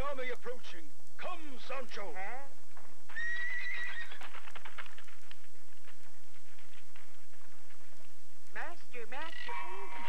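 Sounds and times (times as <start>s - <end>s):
cartoon horse whinnying: 3.1s - 4.4s.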